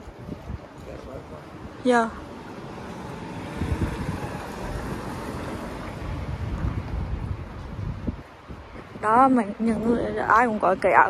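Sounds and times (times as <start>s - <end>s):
street ambience hiss: 0.0s - 11.0s
wind buffeting microphone: 0.0s - 11.0s.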